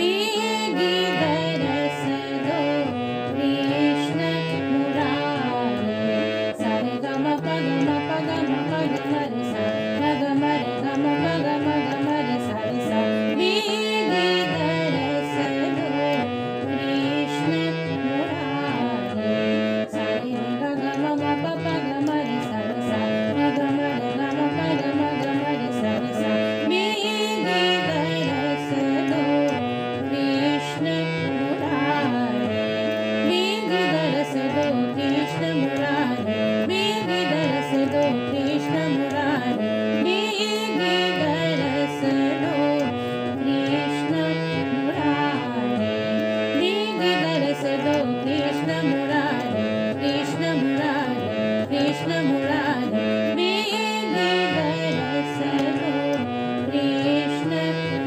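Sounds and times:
harmonium playing fast runs: 0.0s - 58.0s.

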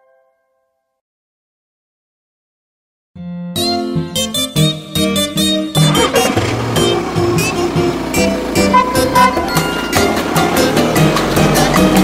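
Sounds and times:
upbeat instrumental children's music: 3.2s - 12.0s
cartoon bus engine effect: 4.4s - 12.0s.

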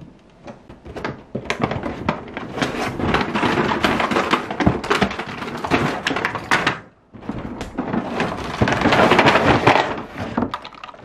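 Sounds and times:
plastic wrap and cardboard crinkling: 0.9s - 11.0s.

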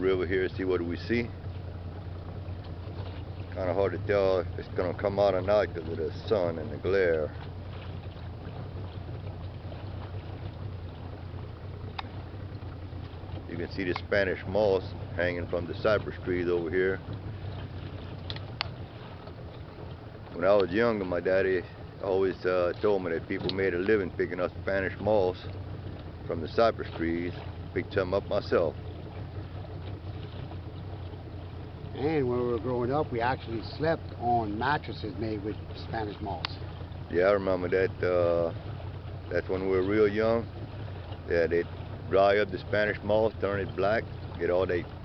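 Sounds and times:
boat motor humming: 0.0s - 45.0s
water noise: 0.0s - 45.0s
wind: 0.0s - 45.0s.

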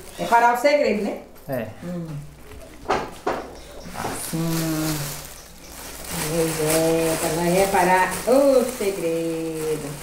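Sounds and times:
gift wrap crinkling: 3.8s - 10.0s
person humming: 4.2s - 5.2s.

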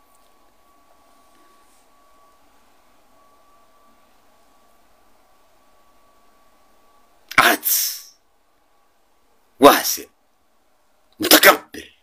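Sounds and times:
faint steady whine: 0.0s - 12.0s
man's loud vocal outburst: 7.3s - 8.1s.

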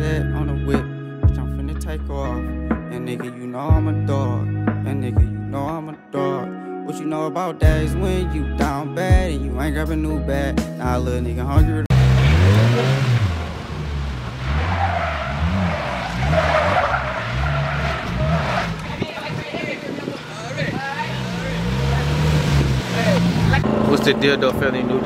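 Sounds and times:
three-wheeler engine revving: 11.9s - 25.0s
tyre squealing and skidding: 12.0s - 19.4s.

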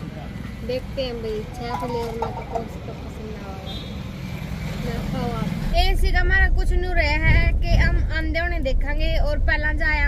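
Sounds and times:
street noise: 0.0s - 10.0s
woman speaking: 0.6s - 3.8s
car rumble from inside cabin: 4.9s - 10.0s.

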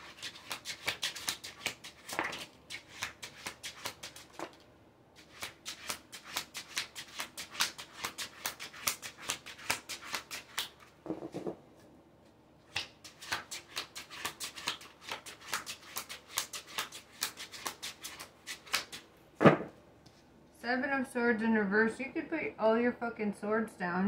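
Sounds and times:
cards being shuffled: 0.1s - 4.6s, 5.2s - 11.6s, 12.7s - 19.6s.

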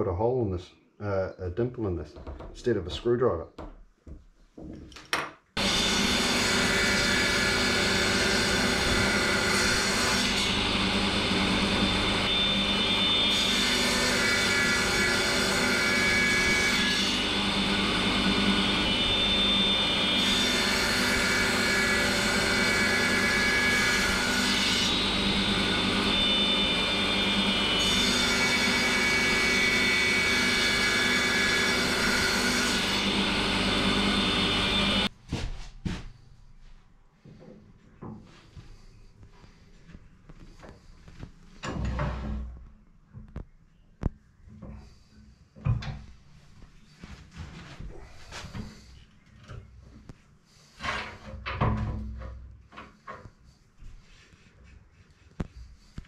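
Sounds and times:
woodworking power tool running: 5.6s - 35.1s.

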